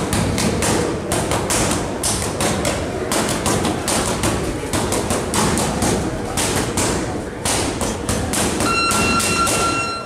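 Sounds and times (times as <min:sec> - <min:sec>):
boxing gloves hitting mitts: 0:00.0 - 0:09.9
steady high-pitched tone: 0:08.6 - 0:10.0.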